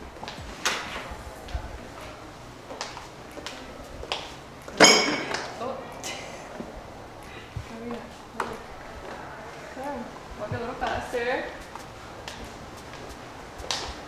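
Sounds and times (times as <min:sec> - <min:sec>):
footsteps on tile floor: 0:00.0 - 0:05.6, 0:06.5 - 0:14.0.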